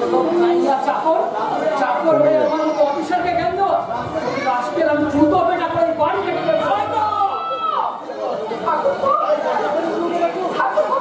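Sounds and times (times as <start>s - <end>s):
stage dialogue echoing in hall: 0.0s - 11.0s.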